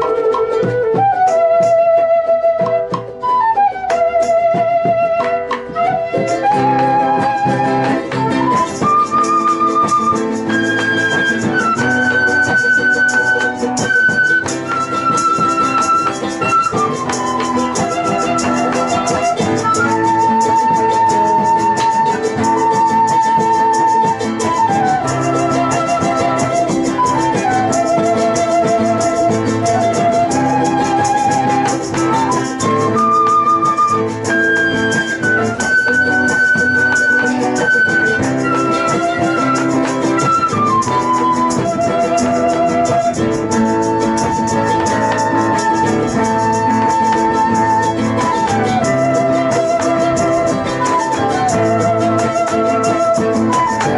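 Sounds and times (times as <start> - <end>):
flute melody: 0.0 - 53.9
strummed acoustic guitars: 0.0 - 53.9
violin: 0.0 - 53.9.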